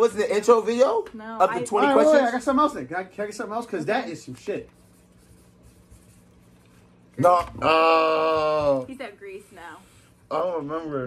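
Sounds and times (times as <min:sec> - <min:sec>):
low room hum: 0:00.0 - 0:11.0
pen scratching on paper: 0:04.4 - 0:06.8.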